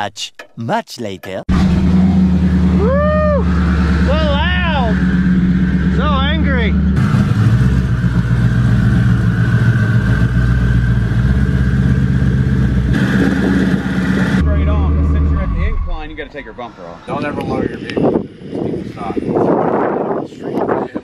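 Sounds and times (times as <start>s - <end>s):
car engine drone: 1.5s - 20.0s.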